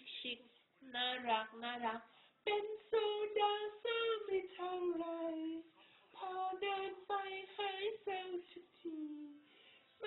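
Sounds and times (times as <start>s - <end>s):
woman singing unaccompanied: 0.0s - 9.5s.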